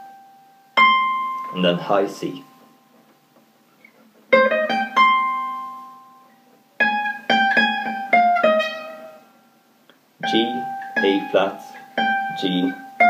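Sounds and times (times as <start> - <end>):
acoustic guitar single notes: 0.0 - 13.0.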